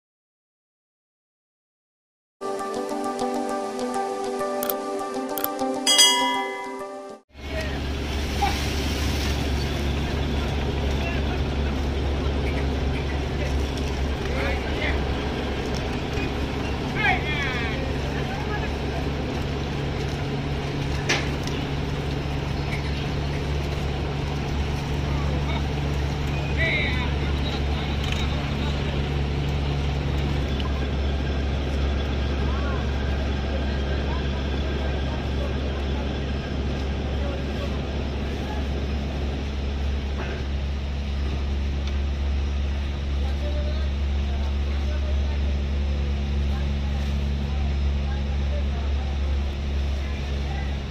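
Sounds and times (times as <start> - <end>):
voices calling out: 7.4 - 40.6
low machinery drone: 7.4 - 50.9.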